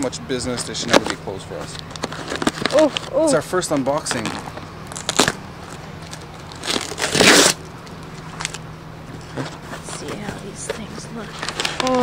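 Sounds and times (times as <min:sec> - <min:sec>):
packing tape ripping off box: 0:01.9 - 0:03.1, 0:04.1 - 0:05.4, 0:06.1 - 0:07.7, 0:11.4 - 0:12.0.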